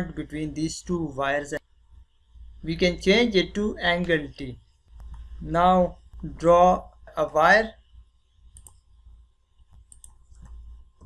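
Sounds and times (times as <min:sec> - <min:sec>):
computer mouse clicks: 0:04.8 - 0:05.4, 0:08.5 - 0:08.9, 0:09.6 - 0:11.0.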